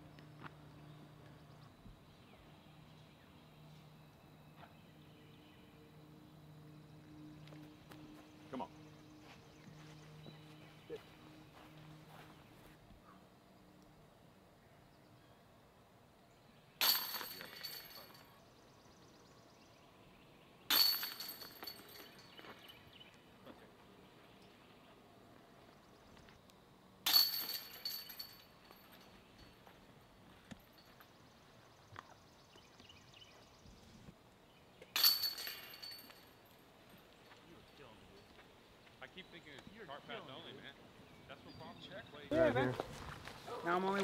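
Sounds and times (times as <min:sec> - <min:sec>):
disc golf putts hitting chains: 0:16.6 - 0:18.9, 0:20.6 - 0:23.1, 0:27.0 - 0:31.2, 0:34.7 - 0:38.5.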